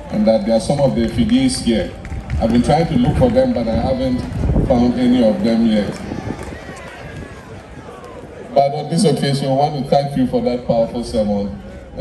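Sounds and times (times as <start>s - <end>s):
murmur of faint voices: 0.0s - 12.0s.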